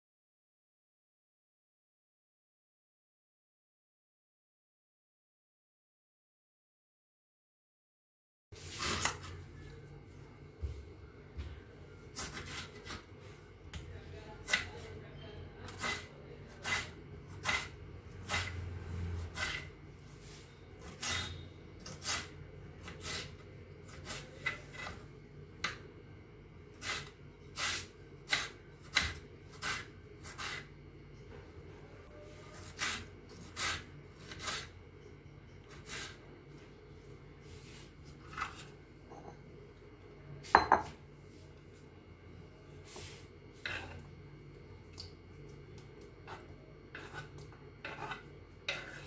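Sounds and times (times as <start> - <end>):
knife chopping on wooden board: 28.3 - 30.6.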